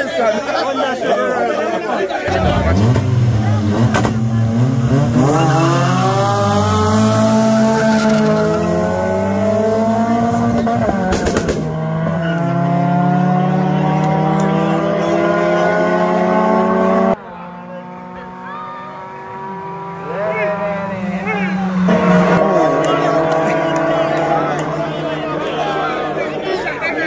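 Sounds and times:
race car engines accelerating: 0.0 - 27.0.

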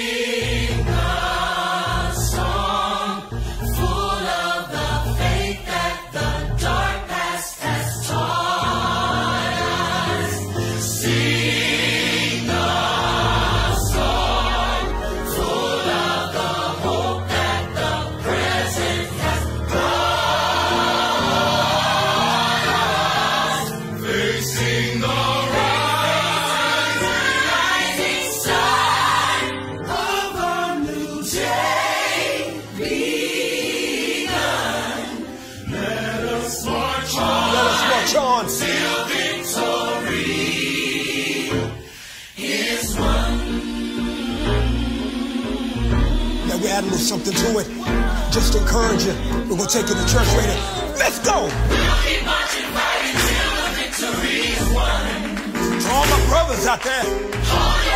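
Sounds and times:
choir singing gospel song: 0.0 - 57.9.

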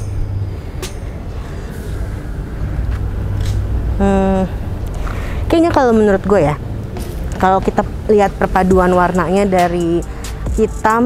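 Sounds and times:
low rumble: 0.0 - 10.6.

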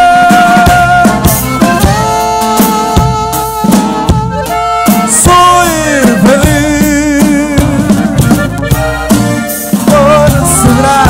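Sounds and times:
drum hits: 0.0 - 11.0
live praise band music: 0.0 - 11.0.

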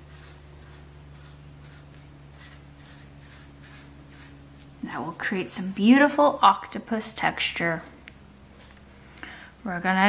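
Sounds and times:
marker rubbing on paper: 0.0 - 4.4
faint low hum: 0.0 - 10.0.

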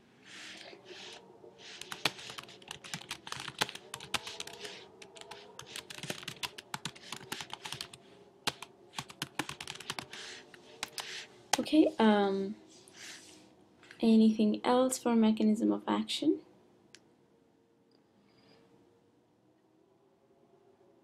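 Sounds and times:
computer keyboard typing: 1.6 - 11.2.

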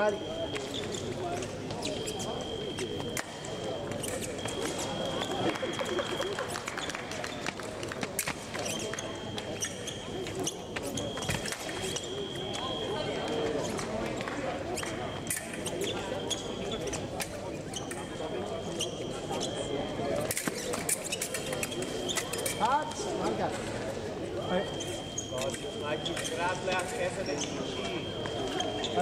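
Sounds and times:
chatter in a large hall: 0.0 - 29.0.

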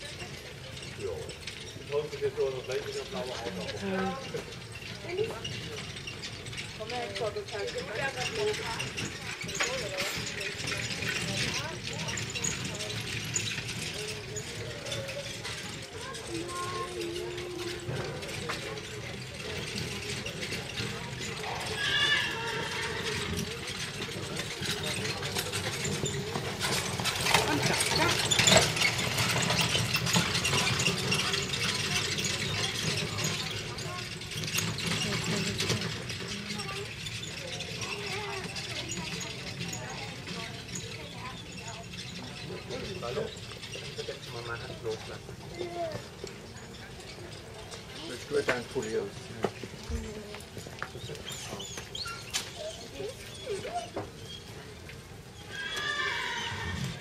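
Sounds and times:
horse-drawn carriage passing: 0.0 - 57.0
murmur of distant voices: 0.0 - 57.0.

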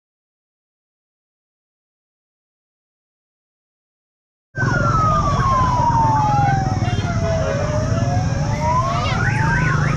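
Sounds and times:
siren wails: 4.6 - 9.9.

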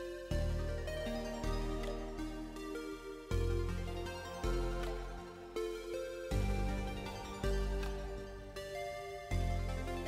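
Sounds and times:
music with held chords: 0.0 - 10.0.

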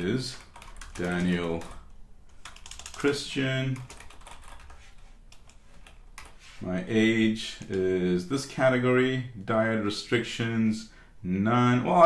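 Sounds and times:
typing on computer keyboard: 0.0 - 6.4.

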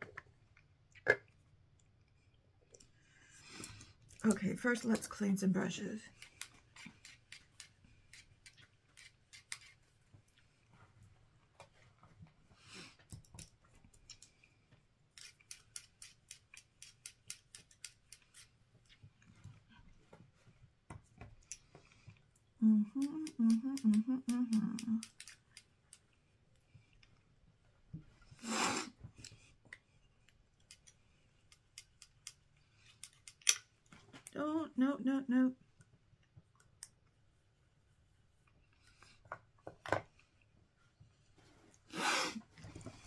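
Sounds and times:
woman humming: 22.6 - 25.2, 34.3 - 35.6.

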